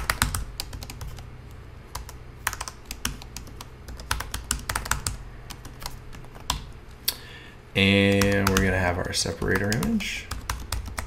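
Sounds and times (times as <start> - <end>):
computer keyboard typing: 0.0 - 1.2, 1.9 - 6.8, 8.0 - 11.0.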